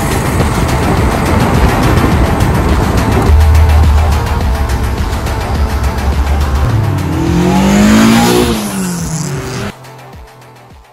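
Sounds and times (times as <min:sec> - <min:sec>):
music with heavy bass beat: 0:00.0 - 0:10.9
car engine revving: 0:03.0 - 0:09.8.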